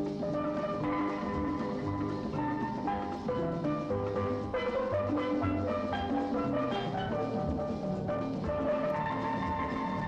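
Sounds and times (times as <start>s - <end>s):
hand drums and percussion: 0.0s - 10.0s.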